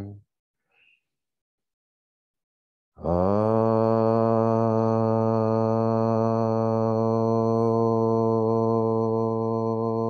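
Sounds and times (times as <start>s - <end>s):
man chanting a long note: 3.0s - 10.0s.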